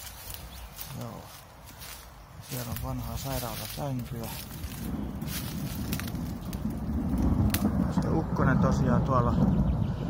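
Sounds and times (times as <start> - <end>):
distant thunder rumble: 2.4 - 10.0.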